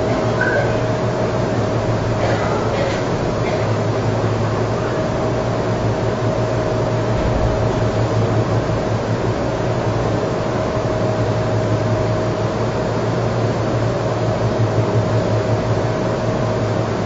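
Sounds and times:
room hum and hiss: 0.0 - 17.0.

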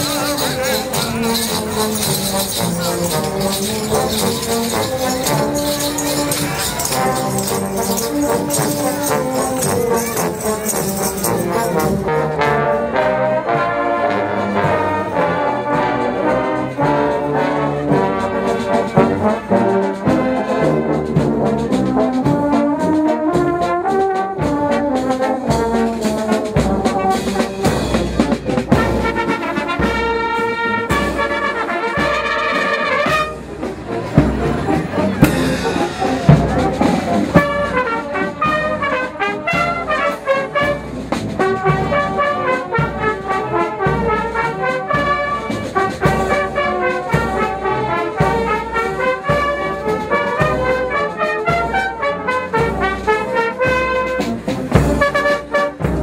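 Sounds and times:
marching brass band playing: 0.0 - 56.0.

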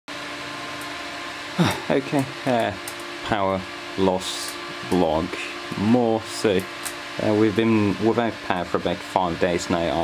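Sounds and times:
electric fans humming: 0.1 - 10.0.

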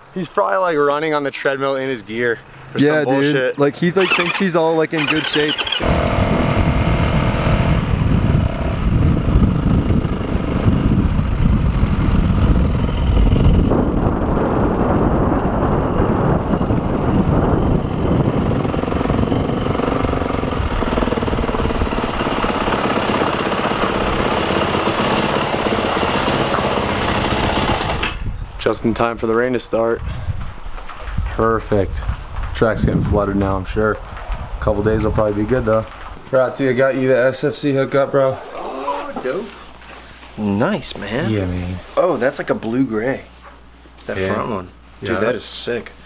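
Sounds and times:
dirt bike engine revving: 4.0 - 15.0, 16.0 - 28.1
wind noise on microphone: 5.5 - 24.6, 26.8 - 36.2.

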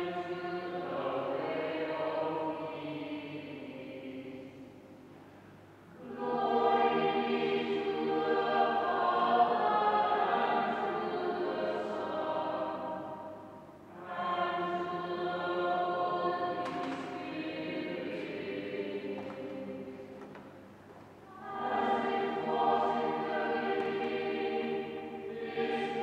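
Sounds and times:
choir singing: 0.0 - 4.6, 5.9 - 20.5, 21.3 - 26.0.

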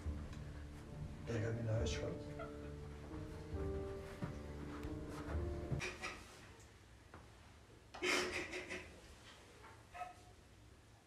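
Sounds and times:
low string music: 0.0 - 6.0.

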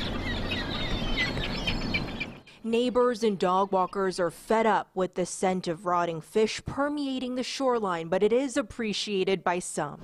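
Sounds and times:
gulls calling: 0.0 - 4.2.

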